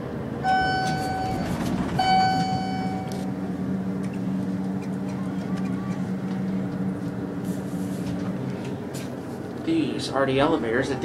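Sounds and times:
elevator hum: 0:00.0 - 0:11.0
elevator chime dings: 0:00.4 - 0:03.3.

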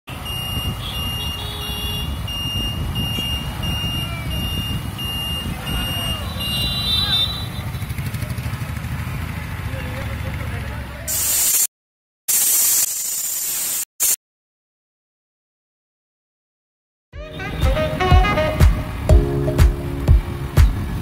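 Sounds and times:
road rumble: 0:00.1 - 0:11.1, 0:17.2 - 0:21.0
wind: 0:00.1 - 0:11.7, 0:17.2 - 0:21.0
short electronic beeps: 0:02.3 - 0:06.6.

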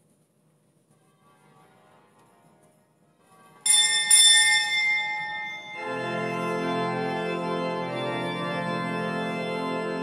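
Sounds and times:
church organ chord: 0:03.6 - 0:10.0
small church bell ringing: 0:03.6 - 0:10.0.

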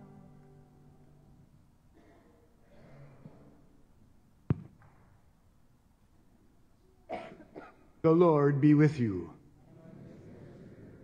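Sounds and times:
person coughing: 0:07.1 - 0:07.9.

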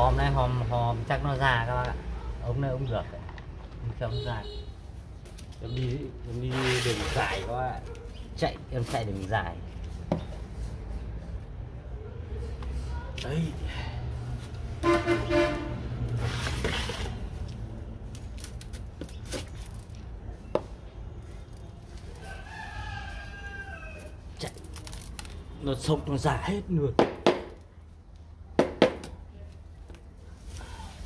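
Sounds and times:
rooster crowing: 0:22.1 - 0:24.2.

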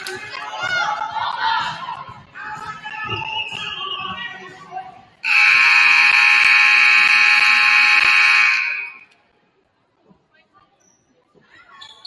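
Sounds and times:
scoreboard horn blast: 0:05.2 - 0:09.0.

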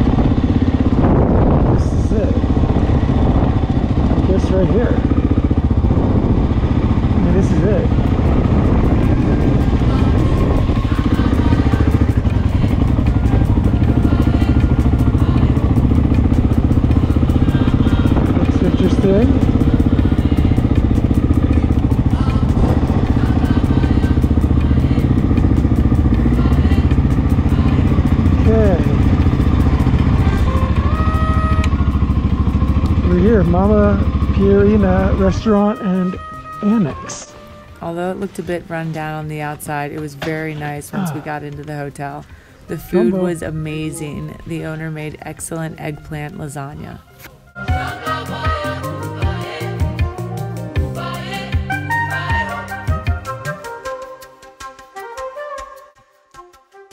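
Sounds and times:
motorcycle engine running at low revs: 0:00.0 - 0:46.9, 0:47.7 - 0:53.6.

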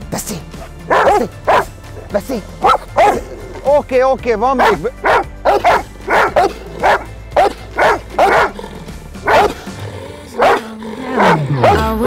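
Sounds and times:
dog barking: 0:00.6 - 0:03.4, 0:04.6 - 0:08.6, 0:09.2 - 0:09.7, 0:10.4 - 0:12.0.

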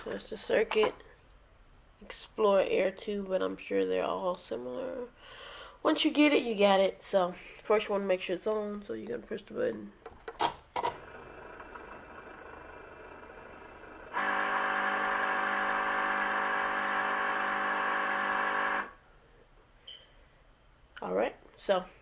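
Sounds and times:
faint steady hum: 0:00.0 - 0:10.3
electric motor whine: 0:11.0 - 0:19.0.

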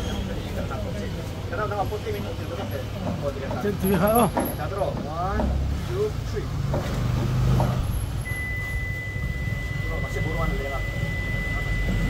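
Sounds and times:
voices talking and exclaiming: 0:00.0 - 0:06.6
steady high-pitched tone: 0:08.3 - 0:12.0.

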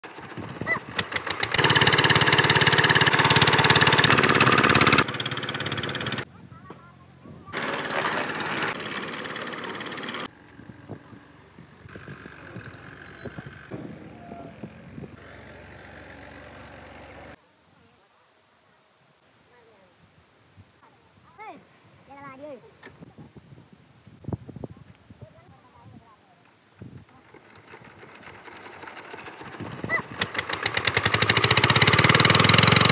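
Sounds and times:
engine hand-cranked: 0:00.1 - 0:06.2, 0:07.6 - 0:10.3, 0:27.0 - 0:32.9
mixer engine knocking: 0:00.1 - 0:06.3, 0:07.5 - 0:10.3, 0:27.2 - 0:32.9.

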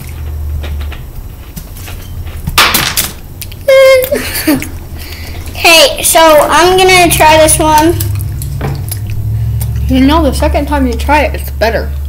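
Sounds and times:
steady low hum: 0:00.0 - 0:12.0
faint clicks of chewing candy: 0:07.8 - 0:09.9.

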